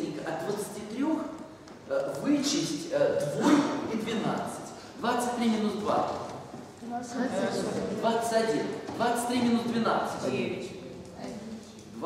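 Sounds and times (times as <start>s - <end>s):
person speaking: 0.0s - 12.0s.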